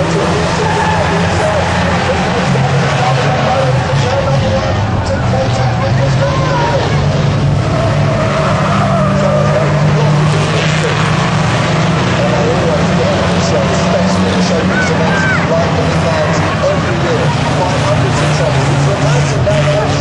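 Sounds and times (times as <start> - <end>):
racing engines revving: 0.0 - 20.0.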